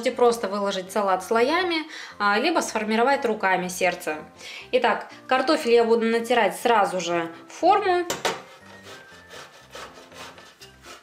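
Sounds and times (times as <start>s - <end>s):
potato scraping on metal grater: 8.4s - 11.0s.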